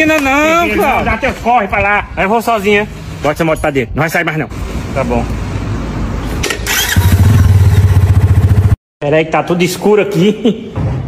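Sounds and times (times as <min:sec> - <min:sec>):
motorcycle engine running: 0:06.7 - 0:08.8.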